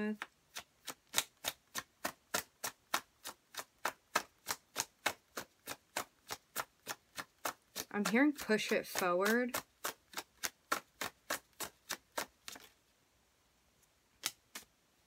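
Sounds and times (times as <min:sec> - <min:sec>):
cards shuffled and tapping down: 0:00.1 - 0:12.8, 0:14.2 - 0:14.7.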